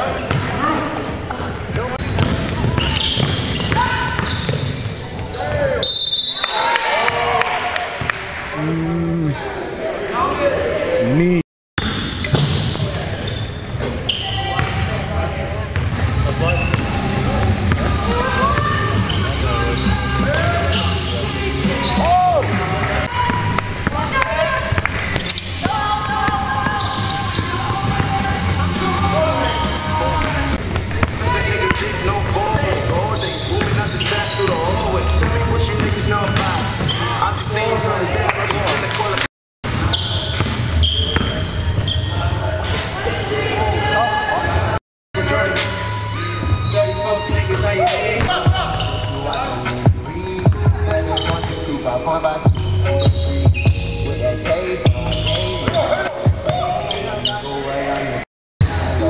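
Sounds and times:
sneakers squeaking: 0.0s - 6.7s, 9.6s - 10.7s, 11.8s - 38.9s, 39.6s - 44.7s, 45.3s - 58.2s
players calling out: 14.1s - 38.8s.

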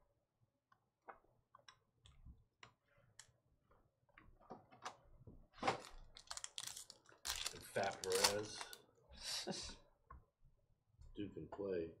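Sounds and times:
trading cards being handled: 6.2s - 8.8s.

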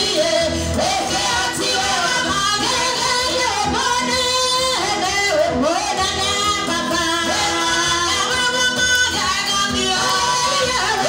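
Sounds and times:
women singing worship song: 0.0s - 11.0s.

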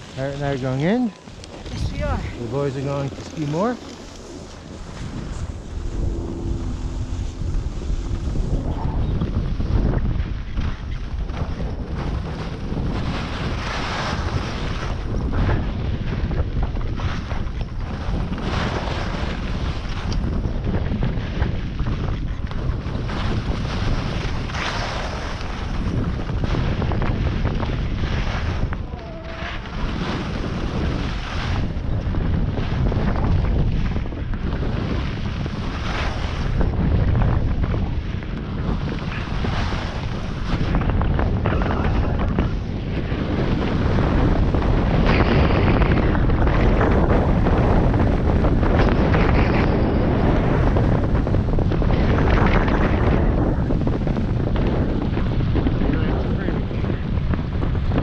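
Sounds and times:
wind rushing over microphone: 0.0s - 58.0s.

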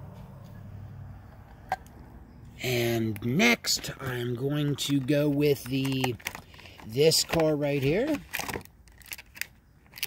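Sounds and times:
plastic packaging clicks and taps: 4.0s - 7.6s.

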